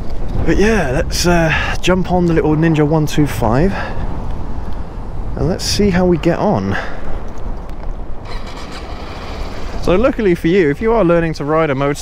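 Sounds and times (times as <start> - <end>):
wind buffeting microphone: 0.0 - 12.0
motorcycle engine idling: 8.2 - 9.9.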